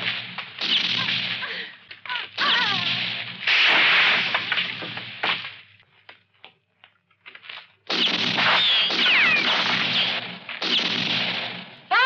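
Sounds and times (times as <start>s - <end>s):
gunshots: 0.0s - 1.6s, 2.3s - 5.6s, 7.9s - 12.0s
ricochet whines: 8.0s - 11.0s.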